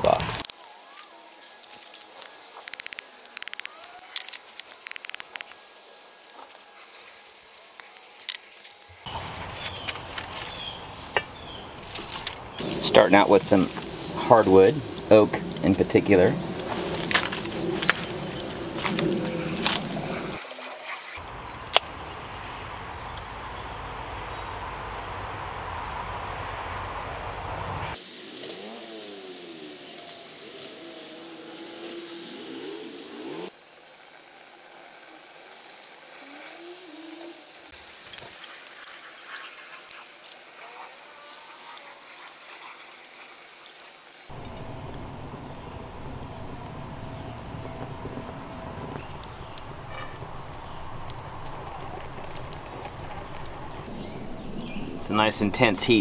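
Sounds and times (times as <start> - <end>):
wood fire crackling: 0.0 - 23.3, 37.3 - 41.3, 42.4 - 56.0
low rumble: 12.6 - 20.4, 44.3 - 55.8.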